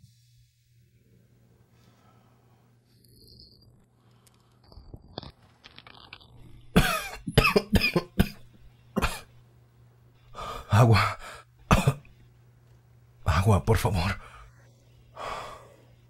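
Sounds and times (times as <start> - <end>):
man coughing: 6.8 - 9.4, 11.7 - 12.1.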